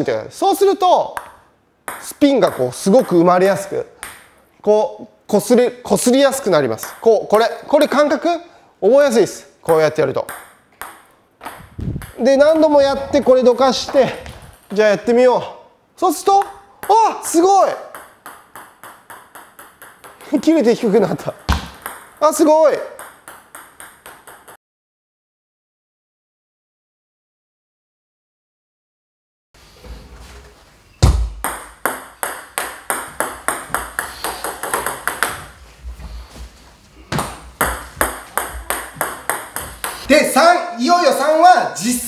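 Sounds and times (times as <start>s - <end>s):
table tennis ball bouncing: 1.1s - 4.5s, 6.3s - 8.0s, 9.7s - 12.7s, 16.4s - 24.6s, 31.0s - 35.6s, 37.1s - 40.1s.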